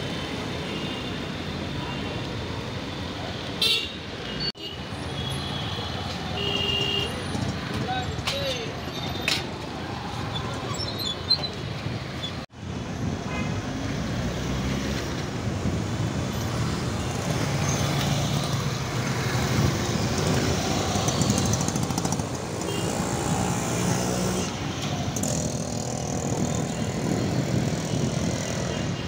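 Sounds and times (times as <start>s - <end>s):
cars passing: 6.1s - 29.0s
motorcycles passing: 14.1s - 29.0s.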